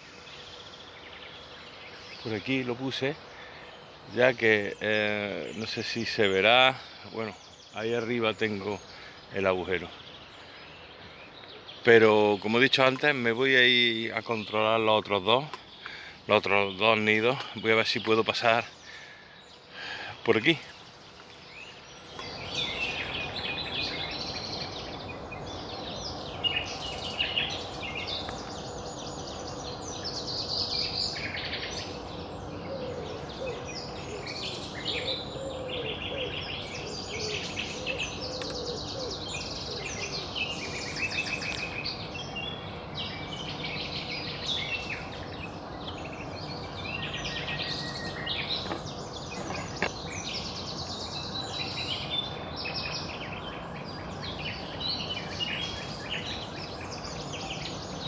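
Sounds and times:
outdoor background noise: 0.0s - 58.0s
songbirds singing and trilling: 0.0s - 58.0s.

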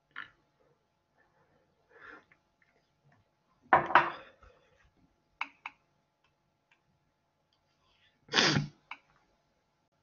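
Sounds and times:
person sneezing: 8.3s - 8.8s.

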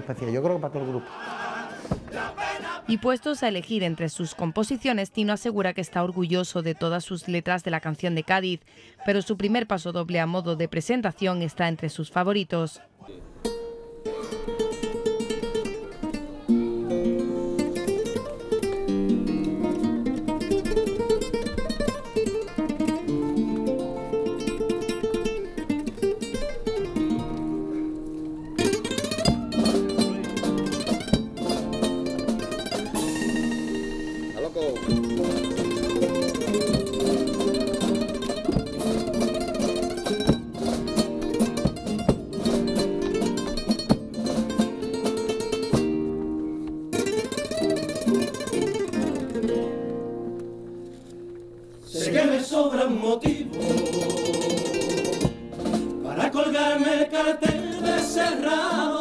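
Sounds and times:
spanish guitar picking and strumming: 13.4s - 59.0s.

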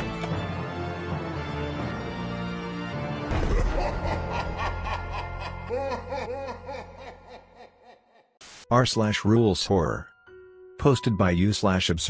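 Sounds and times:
deeper laugh: 3.3s - 8.4s
cackling laugh: 3.4s - 8.4s.

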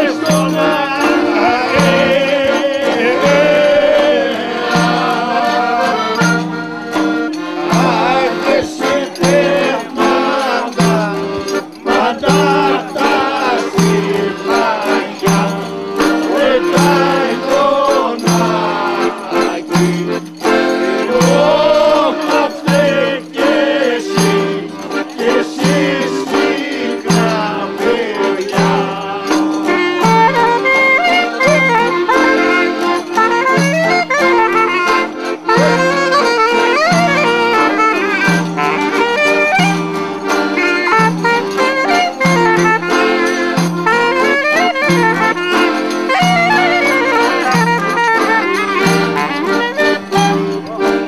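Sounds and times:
men singing: 0.0s - 39.5s
accordion: 0.0s - 51.0s
clarinet melody: 0.0s - 51.0s.

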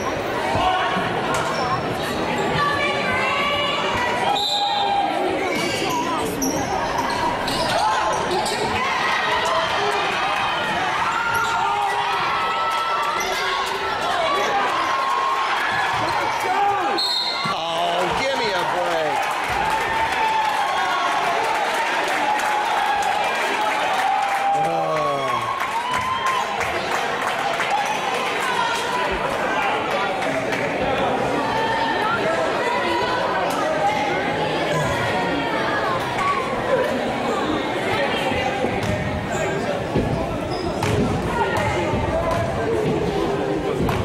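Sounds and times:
indistinct crowd voices: 0.0s - 44.0s.

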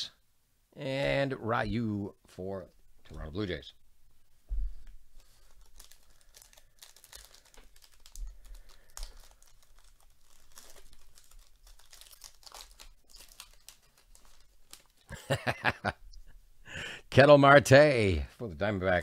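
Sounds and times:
plastic wrapper crinkling: 4.8s - 15.1s.

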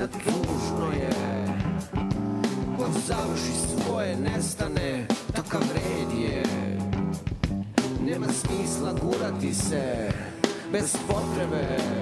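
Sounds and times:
live rock band: 0.0s - 12.0s
low bass notes: 0.0s - 12.0s.

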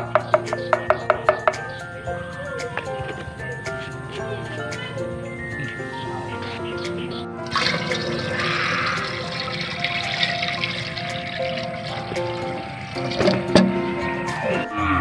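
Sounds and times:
background music: 0.0s - 15.0s
water pouring into metal tank: 7.4s - 14.4s.

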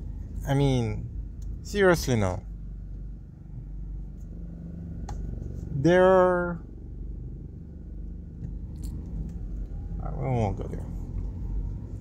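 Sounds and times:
car engine hum and road noise: 0.0s - 12.0s.

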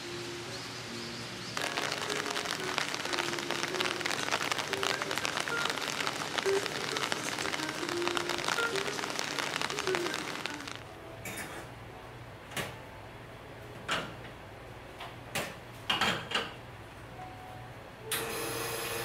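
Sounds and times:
faint music notes: 0.0s - 13.8s
rain pattering on stone and leaves: 1.6s - 10.9s.

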